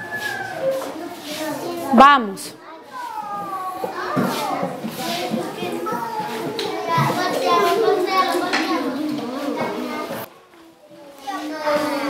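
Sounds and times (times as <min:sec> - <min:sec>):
children reading aloud: 0:00.0 - 0:12.0.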